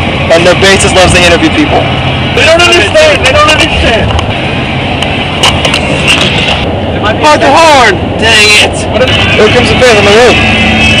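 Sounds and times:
road and engine noise: 0.0 - 11.0.

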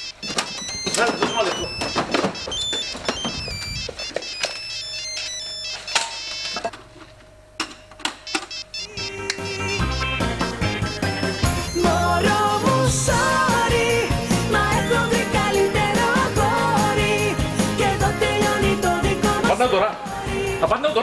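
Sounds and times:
phone ringtone with singing: 0.0 - 6.7, 8.3 - 19.0.

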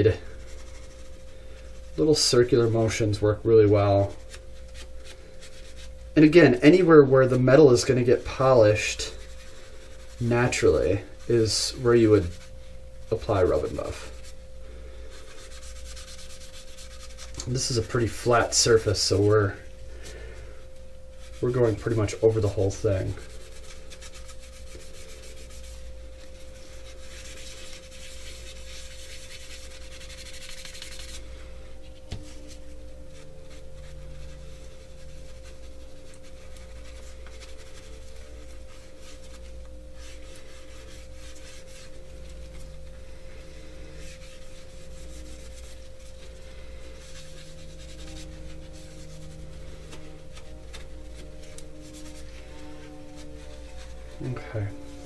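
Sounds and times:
paper towel scrubbing plastic: 0.0 - 55.0
steady low hum: 0.0 - 55.0.

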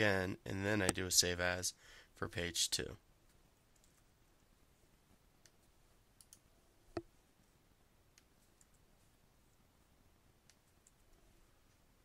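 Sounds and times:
computer mouse clicks: 3.3 - 4.1, 5.4 - 7.1, 8.1 - 8.8, 10.4 - 11.8.

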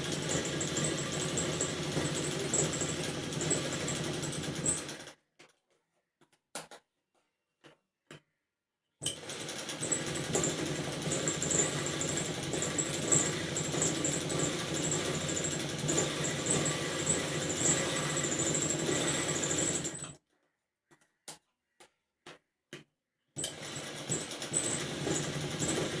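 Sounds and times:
sewing machine running: 0.0 - 5.2, 9.0 - 20.2, 23.4 - 26.0.

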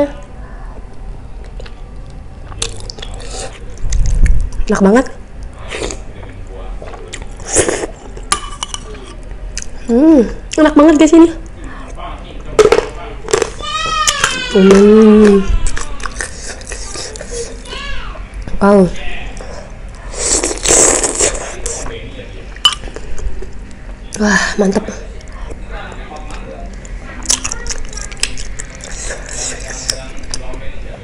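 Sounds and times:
slurping broth: 20.1 - 21.9.

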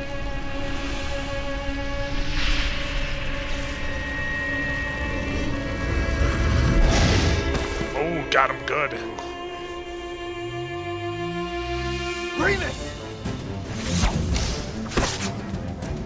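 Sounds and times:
dark film score: 0.0 - 16.0.

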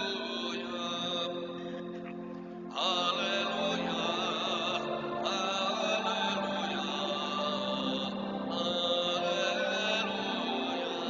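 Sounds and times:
church music with held chords: 0.0 - 11.0.

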